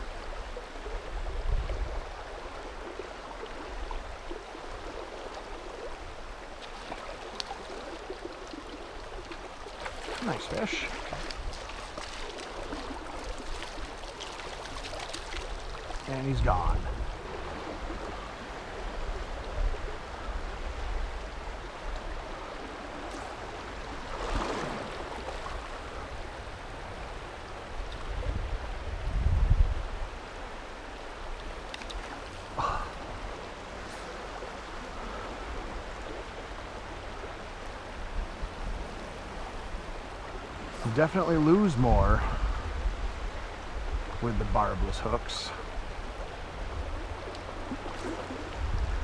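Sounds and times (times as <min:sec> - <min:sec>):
river current rushing: 0:00.0 - 0:29.1, 0:29.7 - 0:49.0.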